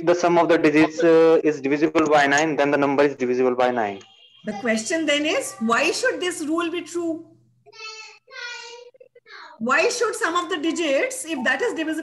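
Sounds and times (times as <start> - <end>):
lecture speech: 0.0 - 6.3.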